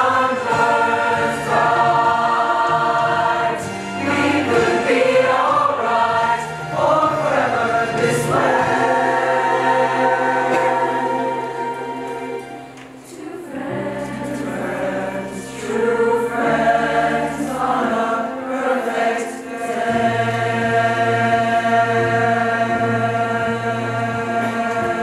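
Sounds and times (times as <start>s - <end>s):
choir singing sustained chords: 0.0s - 25.0s.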